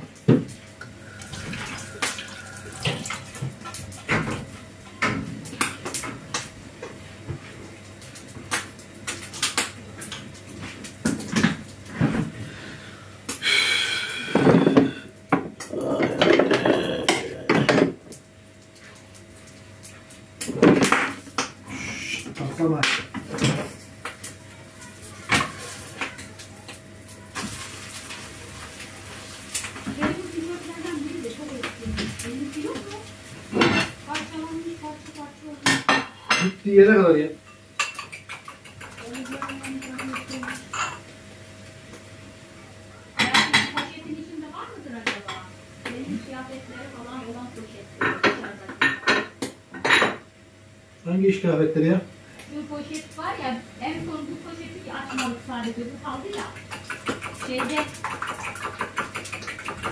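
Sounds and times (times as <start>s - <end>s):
faint steady hum: 0.0s - 36.6s
running water: 1.0s - 4.1s, 55.8s - 59.9s
dishes and cutlery clinking: 37.5s - 41.1s.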